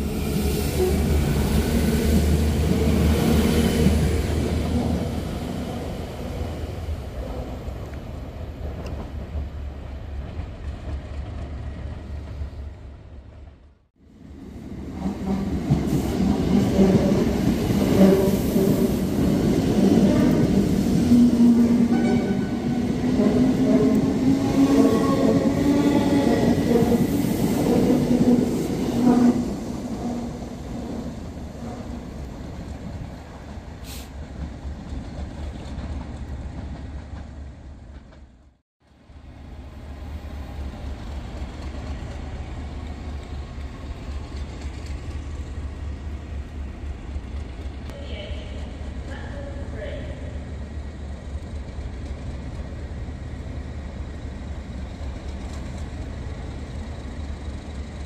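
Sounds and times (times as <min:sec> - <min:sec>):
train coaches rumbling past: 0:00.0 - 0:58.0.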